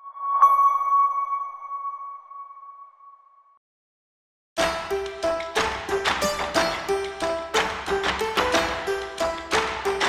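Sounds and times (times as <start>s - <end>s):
bell-like electronic chime: 0.0s - 3.5s.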